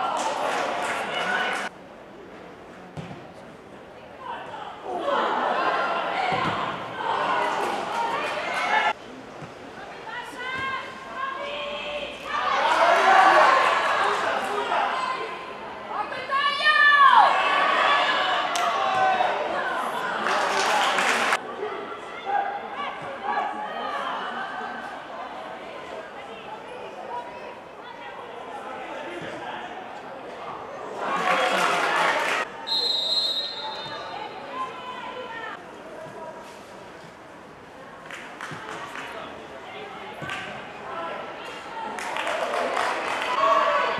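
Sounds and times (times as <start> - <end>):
voices shouting and calling out: 4.1 - 9.0, 9.8 - 36.5, 38.4 - 43.9
referee whistle blast: 32.7 - 34.2.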